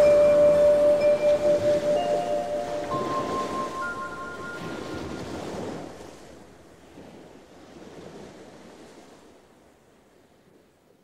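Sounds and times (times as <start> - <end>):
electronic chime tones: 0.0 - 5.2
waves washing in: 0.0 - 10.7.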